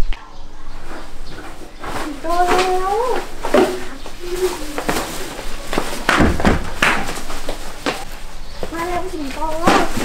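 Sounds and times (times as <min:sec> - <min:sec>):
door shutting with thud: 0:06.1 - 0:06.8.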